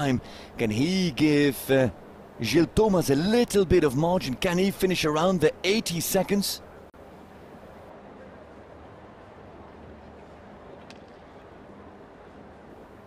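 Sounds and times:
faint outdoor arena background noise: 0:00.0 - 0:13.0.

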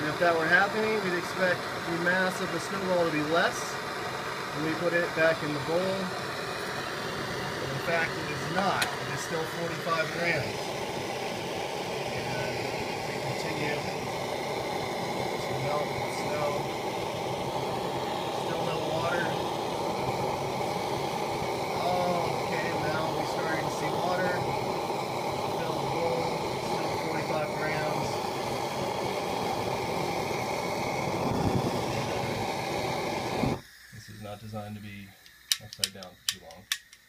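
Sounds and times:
propane torch hissing: 0:00.0 - 0:37.0.

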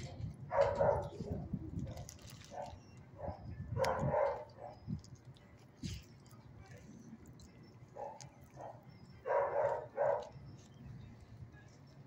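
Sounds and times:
dog barking: 0:00.5 - 0:01.2, 0:02.5 - 0:04.8, 0:08.0 - 0:10.3.

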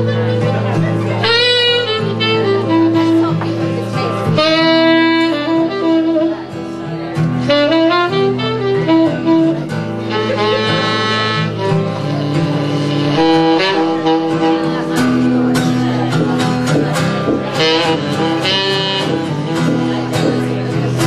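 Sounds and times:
saxophone melody: 0:00.0 - 0:21.0
strummed acoustic guitar: 0:00.0 - 0:21.0.

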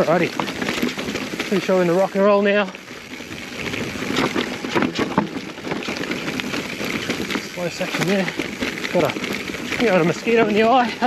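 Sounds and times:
bike rattling: 0:00.0 - 0:11.0
bike tyres on rocky dirt: 0:00.0 - 0:11.0.

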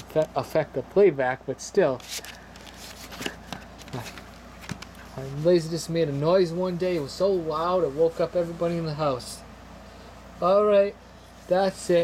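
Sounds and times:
cardboard rustling: 0:02.0 - 0:05.5.

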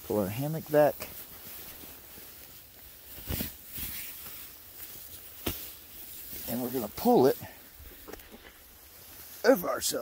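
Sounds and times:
fabric rustling: 0:00.0 - 0:10.0.

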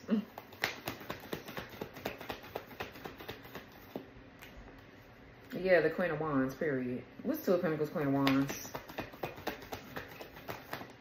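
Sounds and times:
cards being shuffled by hand: 0:00.2 - 0:04.1, 0:08.0 - 0:11.0.

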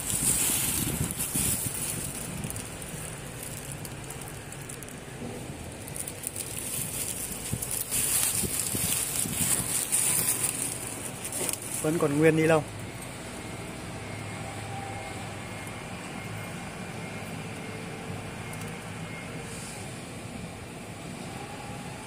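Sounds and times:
plastic sheeting crinkling: 0:00.0 - 0:12.7.

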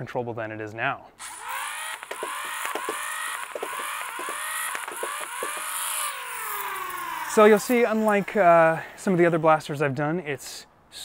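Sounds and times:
flywheel motors whining: 0:01.2 - 0:09.7
foam balls firing with clacks: 0:01.3 - 0:08.2.

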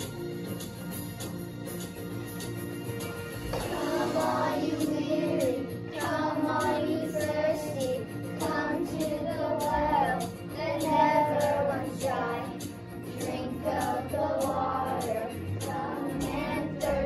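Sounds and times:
instrumental accompaniment: 0:00.0 - 0:17.0
children singing together: 0:03.5 - 0:17.0.

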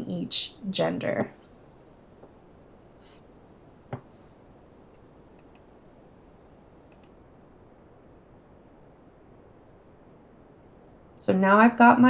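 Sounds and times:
low room hiss: 0:00.0 - 0:12.0
computer mouse clicks: 0:05.3 - 0:05.7, 0:06.9 - 0:07.2.

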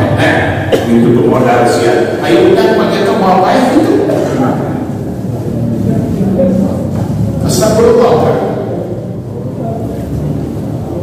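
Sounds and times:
man speaking over microphone: 0:00.0 - 0:05.0, 0:07.4 - 0:08.8
low rumble of room noise: 0:00.0 - 0:11.0.

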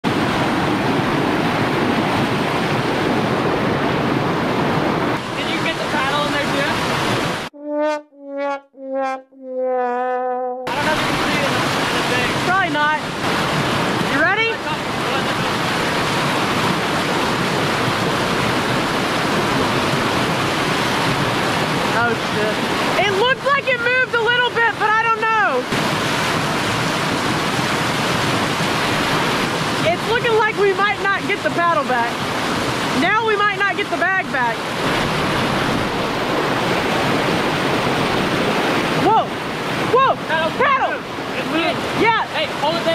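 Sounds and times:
water rushing over rocks: 0:00.1 - 0:07.5, 0:10.7 - 0:42.9
short descending tune: 0:07.6 - 0:10.7.

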